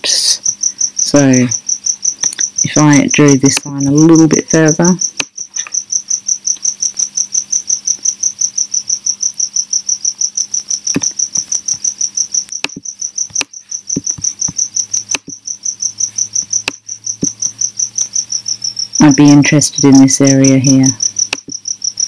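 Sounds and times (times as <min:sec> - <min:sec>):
high-pitched insect chirp: 0:00.0 - 0:22.0
sharp clicks: 0:10.5 - 0:18.5, 0:20.3 - 0:22.0.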